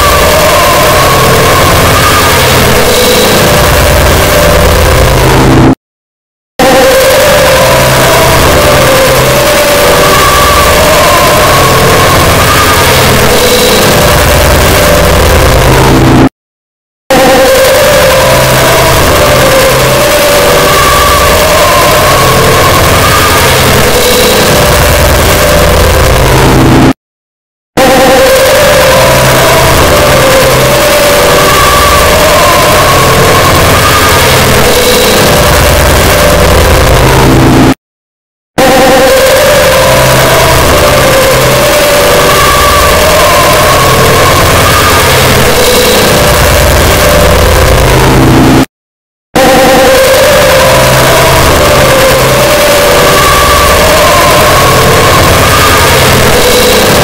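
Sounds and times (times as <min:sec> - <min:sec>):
distorted wall of layered voice: 0:00.0 - 0:05.8, 0:06.6 - 0:16.3, 0:17.1 - 0:27.0, 0:27.8 - 0:37.8, 0:38.6 - 0:48.7, 0:49.4 - 0:57.0.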